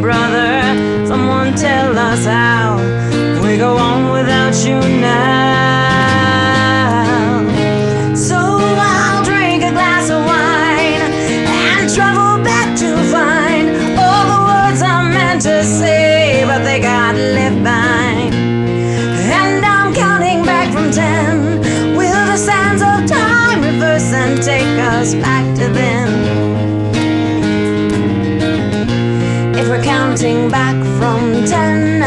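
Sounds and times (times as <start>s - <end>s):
woman's wordless singing: 0.0s - 18.4s, 19.0s - 26.4s, 29.5s - 32.0s
guitar playing slow song: 0.0s - 32.0s.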